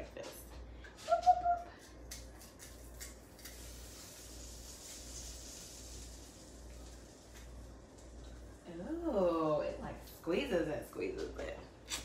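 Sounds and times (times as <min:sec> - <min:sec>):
butter sizzling in a skillet: 0:03.5 - 0:07.6.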